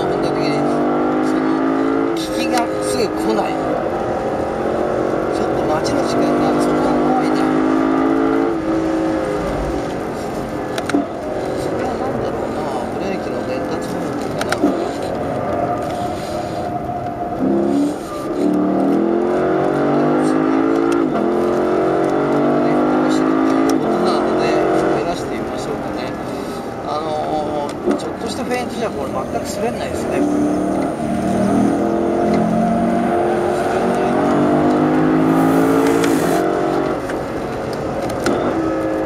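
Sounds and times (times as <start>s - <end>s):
car engine revving: 0.0s - 39.0s.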